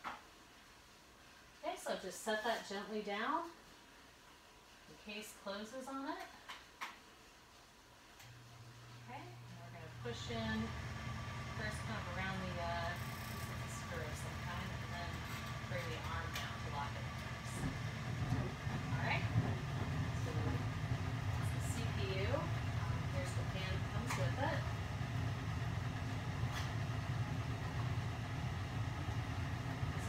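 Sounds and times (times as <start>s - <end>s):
steady low hum: 7.2s - 30.0s.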